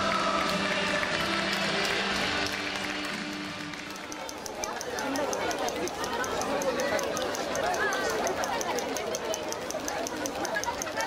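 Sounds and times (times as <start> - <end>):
fast high ticking: 3.8 - 11.0
people talking nearby: 3.8 - 11.0.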